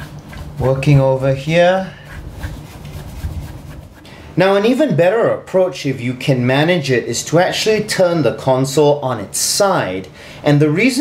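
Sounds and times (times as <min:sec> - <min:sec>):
brush bristles scratchy rustling: 0:00.0 - 0:04.1.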